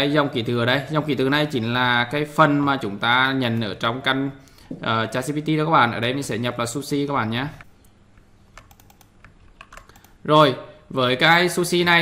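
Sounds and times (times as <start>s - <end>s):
faint typing on a keyboard: 7.5s - 10.2s.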